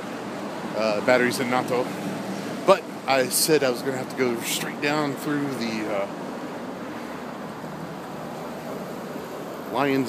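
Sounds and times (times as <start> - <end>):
city street background hiss: 0.0 - 10.0.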